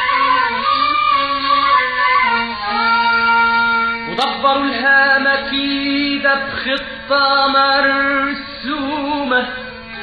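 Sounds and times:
person singing long notes: 0.0 - 10.0.

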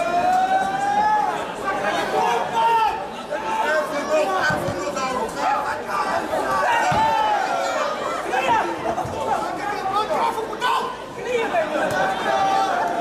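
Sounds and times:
crowd shouting and chattering: 0.0 - 13.0.

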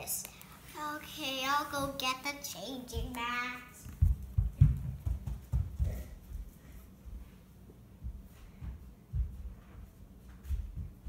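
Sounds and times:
dull knocks on wooden floor: 3.9 - 6.1.

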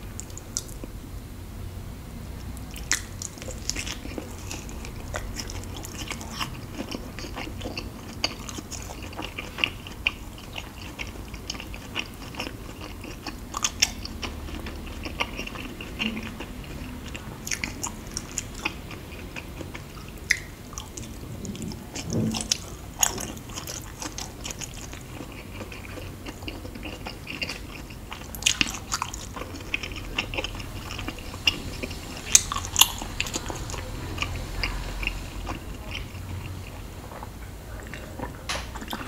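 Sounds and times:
wet chewing mouth smacks: 20.3 - 21.7.

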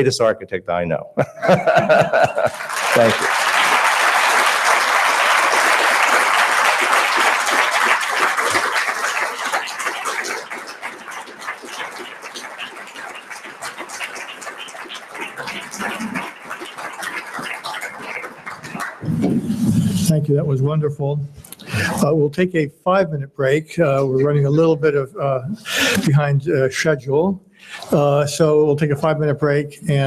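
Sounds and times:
audience applauding: 1.4 - 20.1, 25.7 - 26.1.

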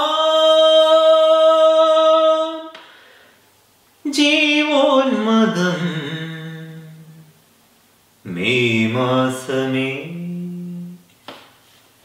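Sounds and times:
man singing unaccompanied: 0.0 - 2.9, 4.0 - 7.4, 8.2 - 11.1
faint breath: 2.8 - 3.5.

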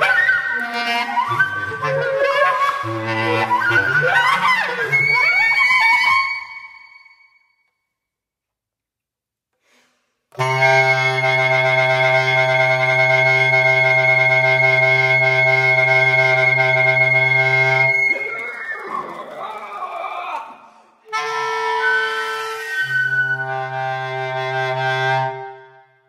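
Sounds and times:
bass clarinet and flute chord: 0.1 - 5.6, 10.4 - 18.1, 21.1 - 25.7.

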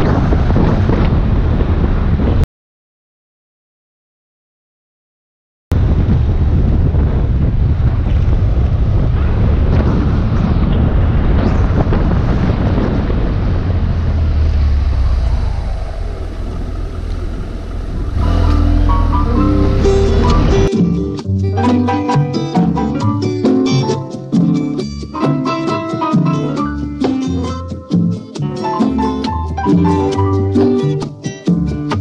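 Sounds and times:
wind rumble on microphone: 0.0 - 2.5, 5.7 - 20.7
motorcycle engine running: 13.0 - 20.7
plucked guitar music: 18.1 - 32.0.

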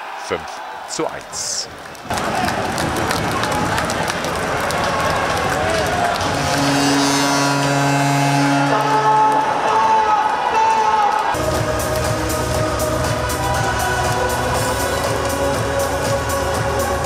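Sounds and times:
crowd cheering: 0.0 - 17.0
music from arena speakers: 5.2 - 17.0.

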